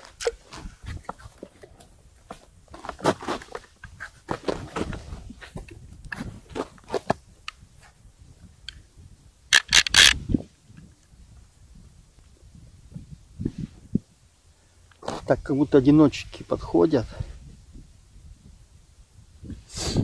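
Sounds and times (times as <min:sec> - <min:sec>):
fishing rod handling scrapes: 0:09.5 - 0:10.2.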